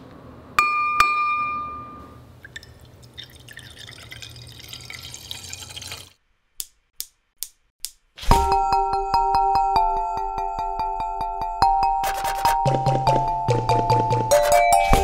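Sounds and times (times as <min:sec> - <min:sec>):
drinking glass clinking: 0:00.6 - 0:06.0
milk pouring into glass: 0:02.4 - 0:06.1.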